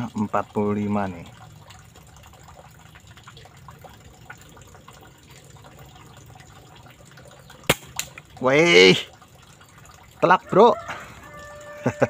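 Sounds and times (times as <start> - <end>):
air rifle shot: 7.7 - 8.1.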